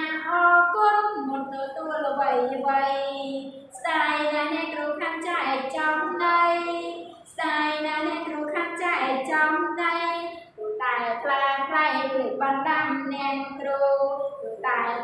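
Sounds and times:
woman singing: 0:00.0 - 0:15.0.

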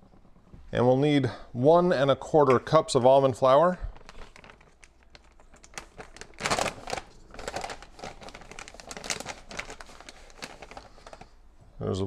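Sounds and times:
plastic bag crinkling: 0:03.4 - 0:11.4.

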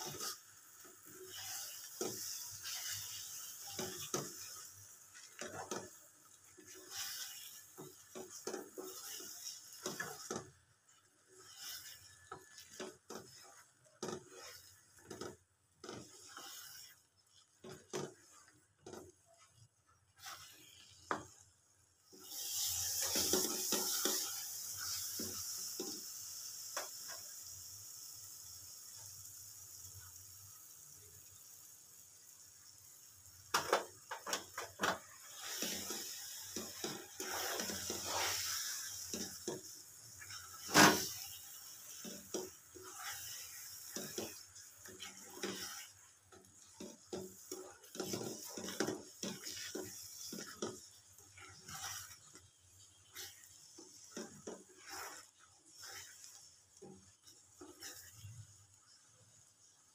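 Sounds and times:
utensil scraping a pan: 0:00.0 - 0:21.4, 0:33.5 - 0:58.4
food sizzling in hot oil: 0:00.0 - 0:59.9.

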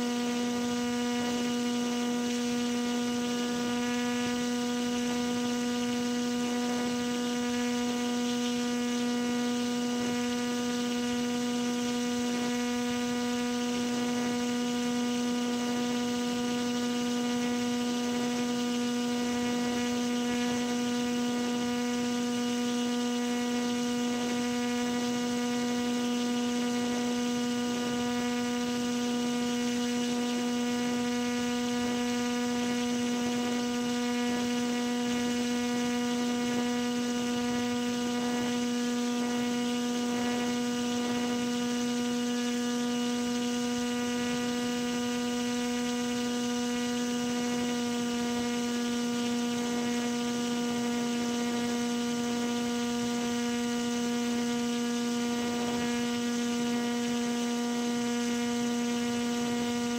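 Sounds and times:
steady pitched hum: 0:00.0 - 0:59.9.

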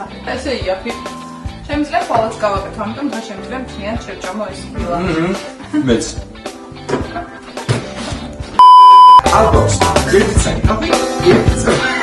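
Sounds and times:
background music: 0:00.0 - 0:08.6, 0:09.2 - 0:12.0
test-tone beep: 0:08.6 - 0:09.2.

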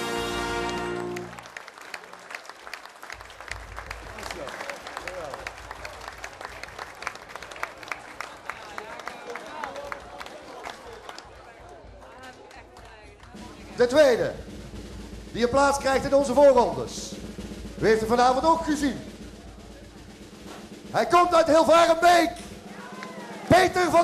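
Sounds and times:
crowd clapping: 0:00.0 - 0:14.2, 0:22.3 - 0:24.0
people talking: 0:10.6 - 0:14.4, 0:15.4 - 0:17.2, 0:17.8 - 0:20.0, 0:20.9 - 0:22.9, 0:23.5 - 0:24.0.

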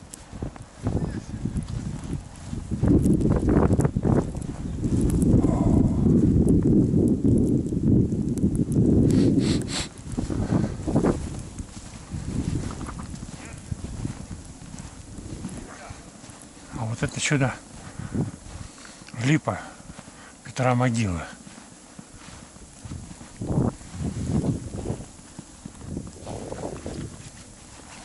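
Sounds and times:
footsteps crunching in snow: 0:00.0 - 0:06.3, 0:09.1 - 0:28.0
rumbling microphone noise: 0:00.0 - 0:28.0.

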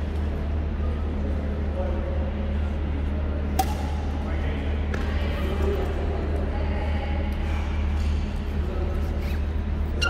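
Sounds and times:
steady low hum: 0:00.0 - 0:10.0
racket hitting shuttlecock: 0:03.5 - 0:04.0.

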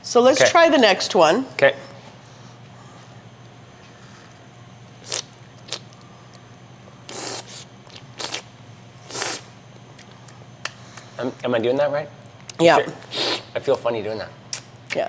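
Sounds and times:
person slurping oil: 0:07.1 - 0:08.5, 0:09.1 - 0:09.5.

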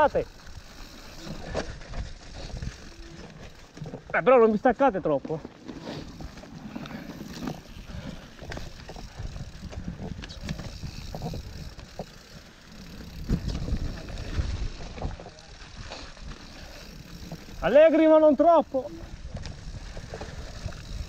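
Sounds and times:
bike tyres rumbling over dirt: 0:00.0 - 0:21.0
bike knocks and rattles: 0:00.3 - 0:15.5.

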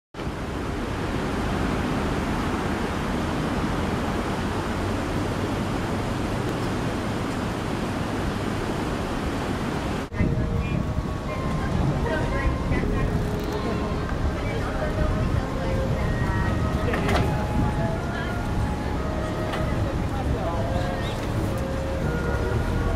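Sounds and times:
steady rushing noise: 0:00.2 - 0:22.9
people's voices: 0:10.1 - 0:22.9.

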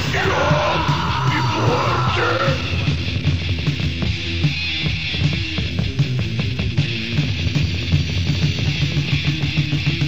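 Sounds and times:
person yelling vocals: 0:00.0 - 0:02.9
distorted metal guitars: 0:00.0 - 0:10.0
drums: 0:00.0 - 0:10.0.

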